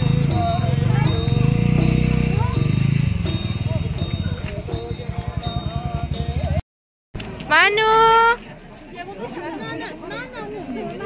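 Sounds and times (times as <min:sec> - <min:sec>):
people chattering: 0:00.0 - 0:06.6, 0:07.2 - 0:11.0
street noise: 0:00.0 - 0:06.6, 0:07.2 - 0:11.0.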